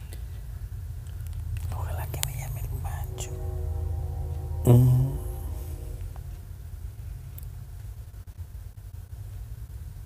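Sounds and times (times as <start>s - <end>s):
faint whispering voice: 1.6s - 3.8s, 4.4s - 5.9s.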